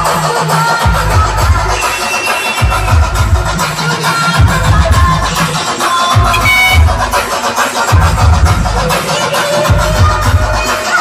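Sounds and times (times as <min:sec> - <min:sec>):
electronic dance music: 0:00.0 - 0:11.0
heavy bass: 0:02.6 - 0:09.1.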